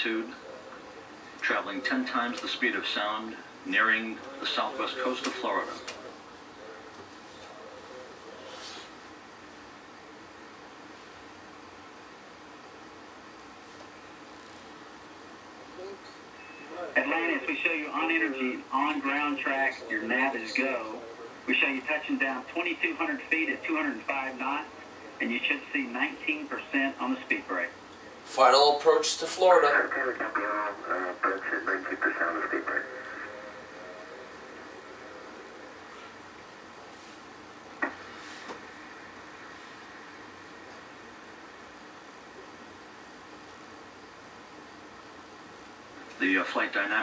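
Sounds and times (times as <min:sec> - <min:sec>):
man speaking over radio: 0:00.0 - 0:06.2, 0:16.8 - 0:35.8, 0:46.2 - 0:47.0
steady low hiss: 0:00.0 - 0:47.0.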